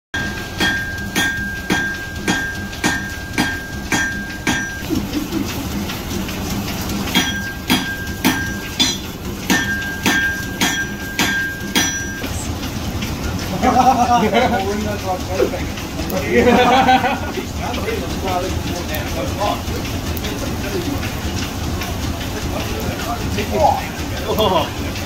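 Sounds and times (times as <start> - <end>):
hammer ringing on anvil: 0.2 - 4.8, 7.1 - 12.3.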